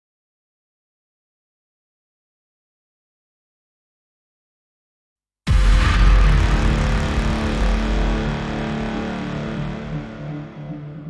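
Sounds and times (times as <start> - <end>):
dense noisy wash: 5.5 - 11.0
held low synth notes: 5.5 - 11.0.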